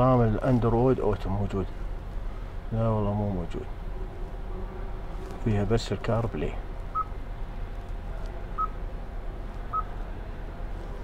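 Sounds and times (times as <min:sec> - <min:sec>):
low cabin hum: 0:00.0 - 0:11.0
short electronic beeps: 0:08.6 - 0:08.8.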